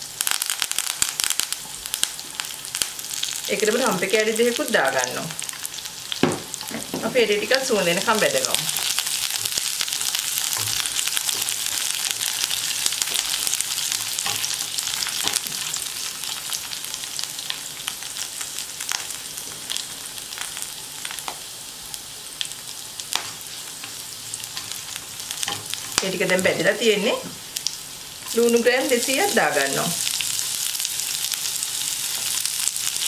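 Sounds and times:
garlic and leaves sizzling in oil: 0.0 - 33.0.

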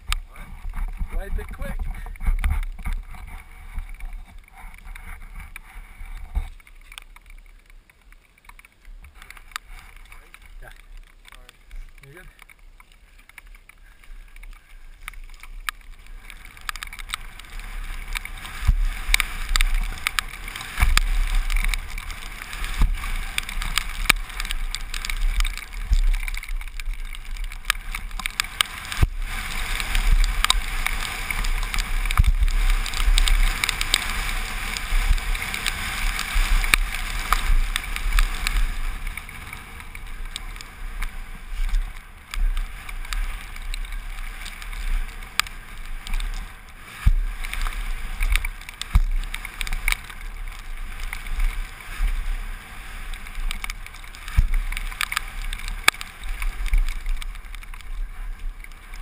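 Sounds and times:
wind rushing over microphone: 0.0 - 6.6, 14.6 - 59.0
bike rattling and knocking: 0.0 - 59.0
tyres rolling over gravel: 0.0 - 59.0.

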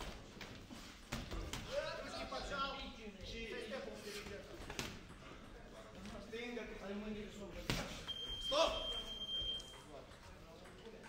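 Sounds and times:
high-pitched timer beep: 8.1 - 9.8.

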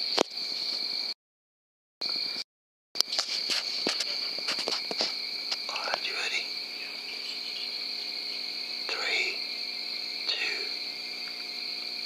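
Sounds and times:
insects trilling: 0.0 - 1.2, 2.0 - 2.4, 3.0 - 12.0.

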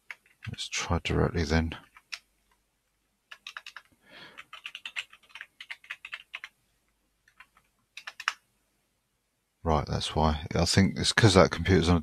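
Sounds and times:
computer keyboard typing: 0.0 - 0.6, 1.8 - 2.3, 3.3 - 6.6, 7.2 - 8.4.

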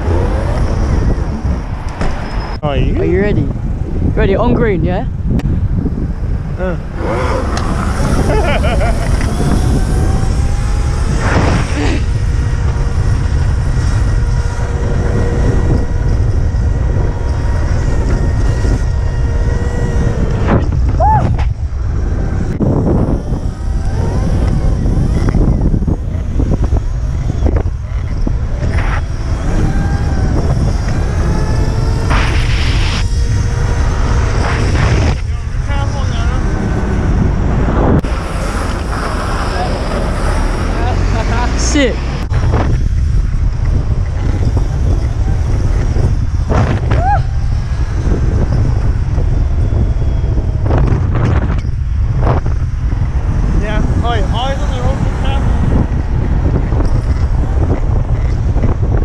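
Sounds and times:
electric motor whining: 0.0 - 59.0
road noise: 0.0 - 59.0
wind buffeting microphone: 0.0 - 59.0.

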